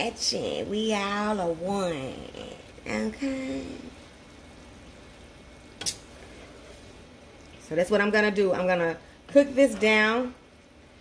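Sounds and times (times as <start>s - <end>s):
wooden spatula stirring: 6.0s - 7.7s.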